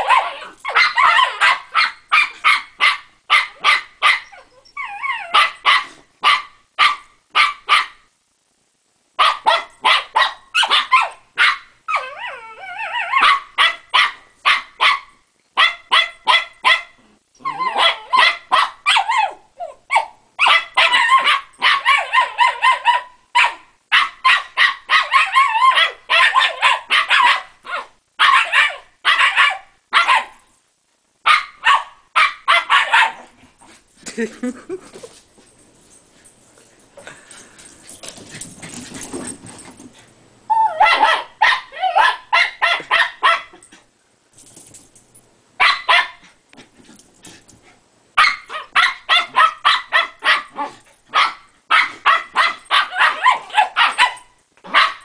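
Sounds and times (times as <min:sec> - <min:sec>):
dogs barking and yipping: 0:00.0 - 0:08.0, 0:09.2 - 0:30.4, 0:31.3 - 0:33.3, 0:40.5 - 0:43.8, 0:45.6 - 0:46.4, 0:48.2 - 0:55.0.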